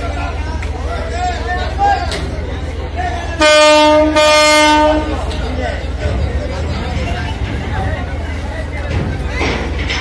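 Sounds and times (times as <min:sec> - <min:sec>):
ship horn blast: 0:03.4 - 0:05.3.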